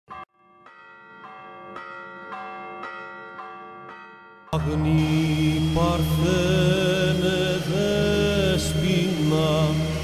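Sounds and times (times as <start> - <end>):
bells ringing: 0.1 - 6.5.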